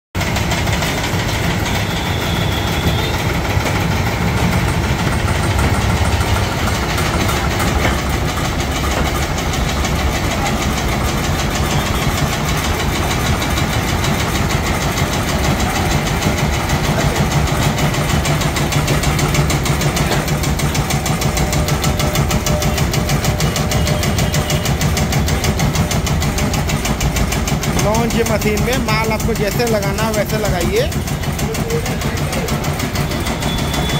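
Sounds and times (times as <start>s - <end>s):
cutting machine chopping leaves: 0.2s - 33.9s.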